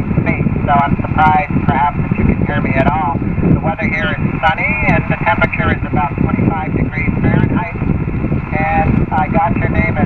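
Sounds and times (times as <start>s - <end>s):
low rumble: 0.0s - 10.0s
man's voice over radio: 0.2s - 7.8s, 8.5s - 10.0s
radio band hiss: 0.2s - 7.8s, 8.5s - 10.0s.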